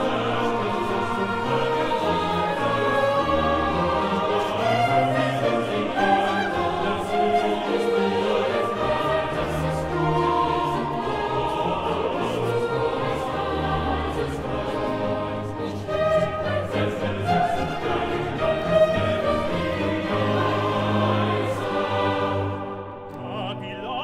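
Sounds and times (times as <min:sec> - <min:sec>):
choir singing with orchestra: 0:00.0 - 0:24.0.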